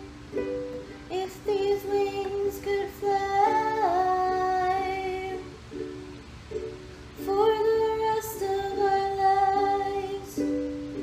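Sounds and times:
ukulele strumming chords: 0.0 - 11.0
woman singing wordless long notes: 1.0 - 5.6, 7.2 - 11.0.

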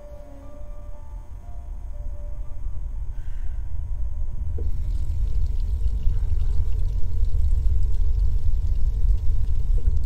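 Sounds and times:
deep low rumble: 2.4 - 10.0.

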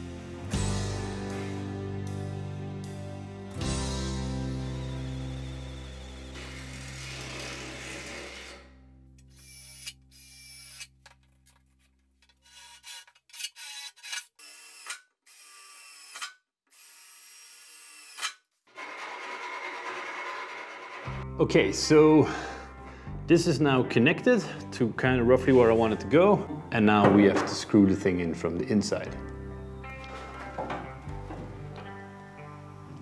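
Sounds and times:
background music: 0.0 - 10.2, 20.9 - 33.0
electric drill boring through metal: 5.4 - 10.9, 12.5 - 21.2.

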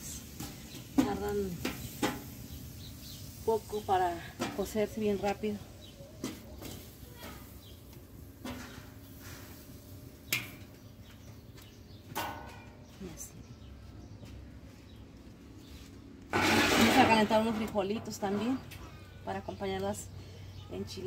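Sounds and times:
low steady background noise: 0.0 - 21.0.

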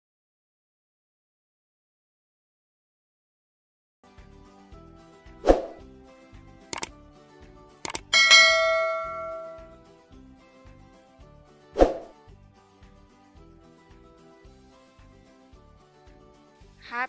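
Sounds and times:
background music with steady beat: 4.1 - 17.0
quick clicks: 6.7 - 6.9, 7.8 - 8.1
bright bell ding: 8.1 - 9.8.

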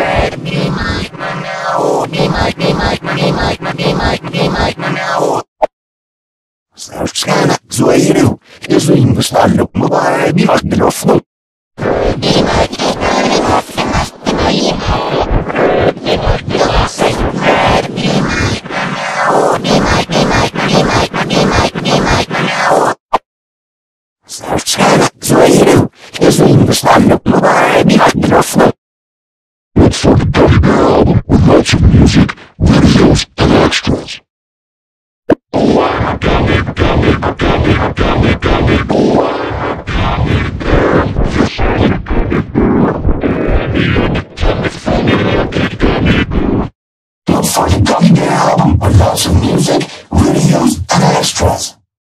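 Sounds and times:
distorted processed audio: 0.0 - 5.4
distorted scratchy audio: 0.0 - 5.5, 6.8 - 11.2, 11.8 - 23.0, 24.3 - 28.8, 29.8 - 34.2, 35.3 - 46.7, 47.3 - 51.8.

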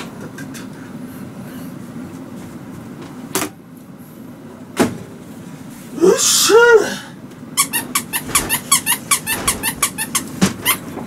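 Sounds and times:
short high squeaks: 7.6 - 10.9.

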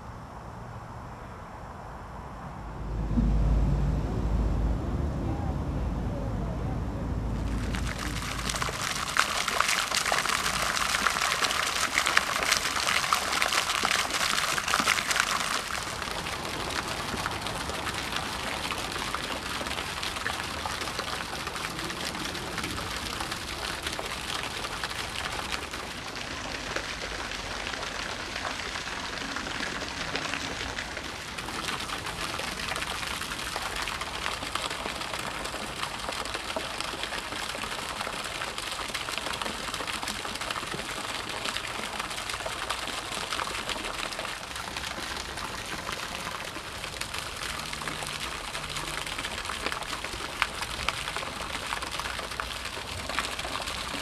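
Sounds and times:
fountain water splashing: 2.8 - 54.0.

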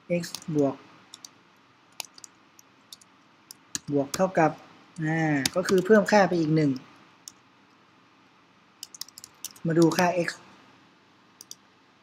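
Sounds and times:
computer keyboard keys clicking: 0.2 - 1.3, 2.0 - 4.2, 5.4 - 6.0, 8.8 - 10.1, 11.4 - 11.6.

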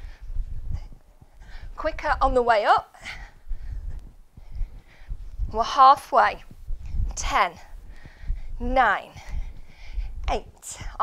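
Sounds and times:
faint breathing: 0.0 - 1.8, 2.9 - 5.5, 6.7 - 11.0.

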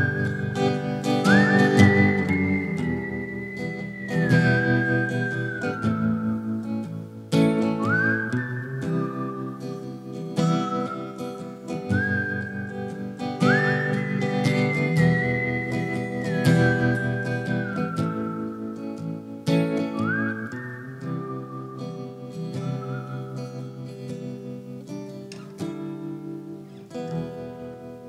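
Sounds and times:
person whistling melody: 0.0 - 24.5
acoustic guitar strumming: 0.0 - 28.0.

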